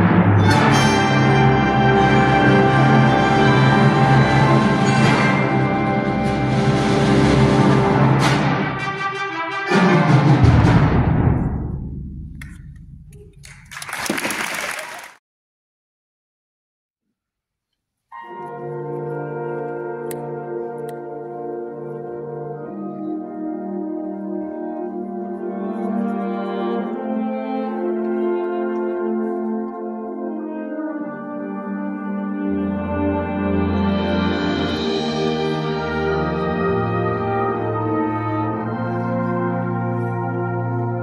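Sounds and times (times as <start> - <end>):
wind band chord with timpani: 0.0 - 12.0, 18.4 - 41.0.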